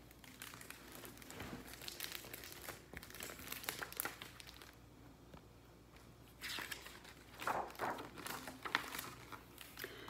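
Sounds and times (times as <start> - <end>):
book pages rustling and crinkling: 0.2 - 4.8, 6.3 - 9.9.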